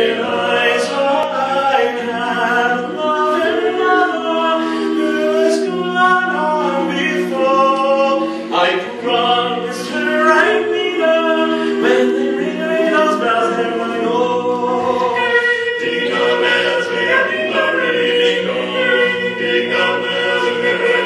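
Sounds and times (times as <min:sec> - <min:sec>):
male quartet singing a cappella: 0:00.0 - 0:21.0.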